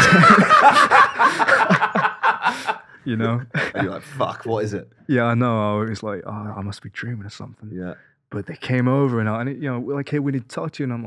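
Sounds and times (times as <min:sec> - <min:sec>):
men laughing loudly: 0:00.0 - 0:04.4.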